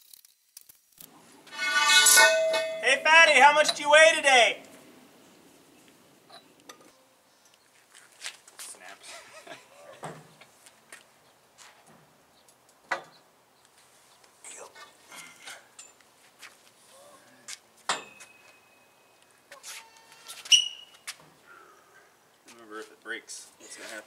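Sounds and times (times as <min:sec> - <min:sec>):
sharp metal clanks: 0:01.5 - 0:03.8, 0:17.9 - 0:18.7.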